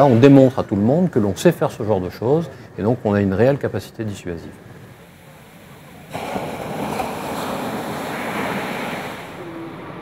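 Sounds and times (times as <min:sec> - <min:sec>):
wave breaking on beach: 0:04.9 - 0:10.0.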